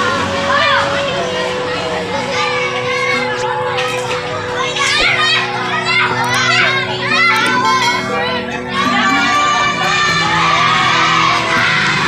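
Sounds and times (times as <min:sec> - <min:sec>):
children chanting and calling out: 0:00.0 - 0:12.0
music with held tones: 0:00.0 - 0:12.0.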